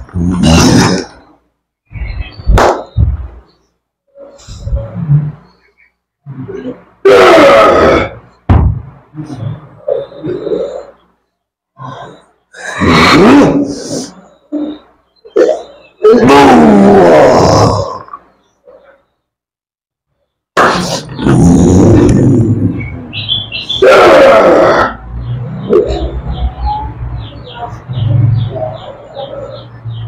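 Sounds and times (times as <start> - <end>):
man roaring and groaning: 7.0 - 8.2, 12.7 - 13.9, 16.0 - 18.0, 23.8 - 25.0.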